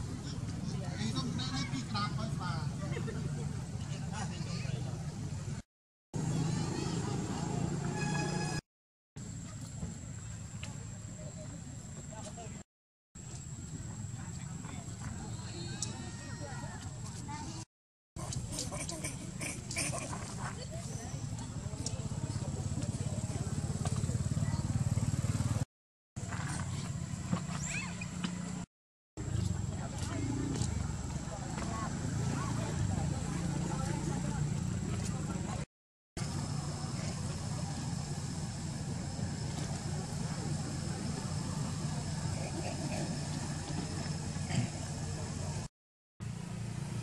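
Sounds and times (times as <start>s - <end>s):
monkeys squeaking and grunting: 18.2s - 21.0s, 27.5s - 28.2s.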